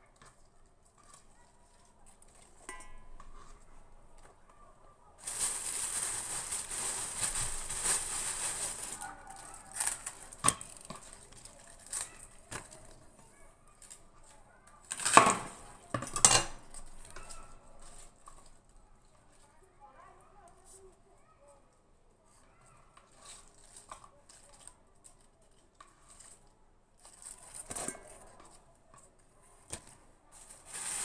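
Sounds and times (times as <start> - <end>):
utensils clattering on counter: 5.2 - 12.8, 14.9 - 17.4.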